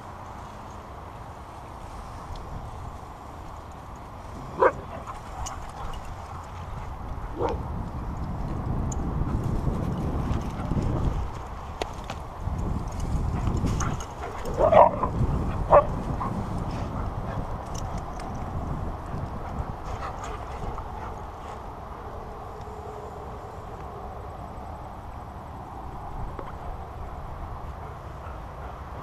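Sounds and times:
steady low rumble: 1.1s - 28.4s.

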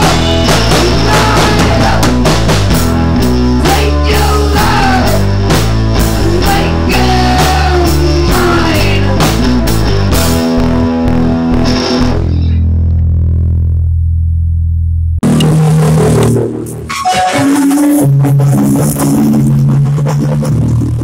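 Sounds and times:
metal band playing: 0.0s - 13.1s, 15.2s - 21.0s.

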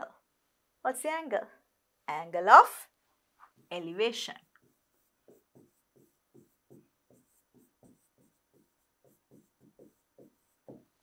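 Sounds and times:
pen strokes on touchscreen: 4.3s - 11.0s.

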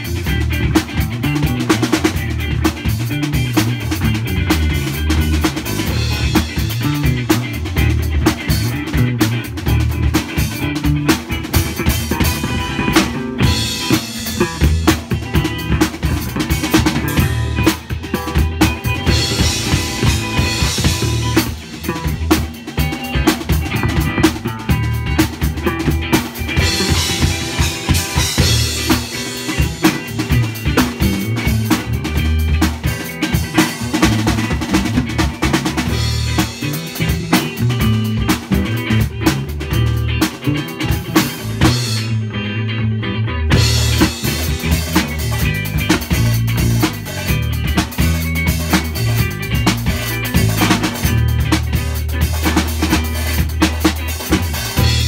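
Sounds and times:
rock band playing funk groove: 0.0s - 55.0s.

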